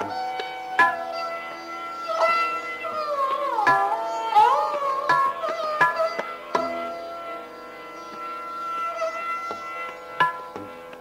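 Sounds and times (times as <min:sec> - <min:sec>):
sarangi bowed note: 0:00.0 - 0:11.0
tabla strokes: 0:00.0 - 0:11.0.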